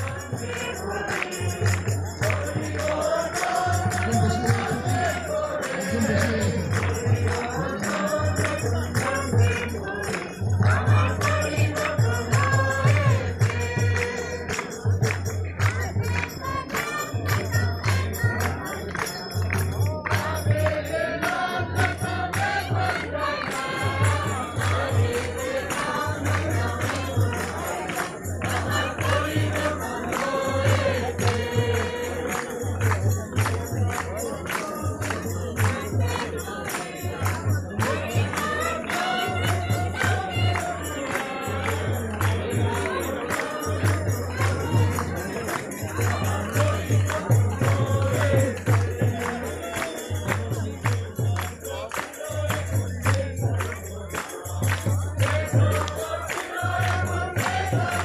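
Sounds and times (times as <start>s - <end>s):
choir singing a hymn: 0.0s - 15.1s, 15.7s - 50.4s, 55.2s - 58.0s
percussion beat: 0.0s - 58.0s
tambourine jingling: 0.0s - 58.0s.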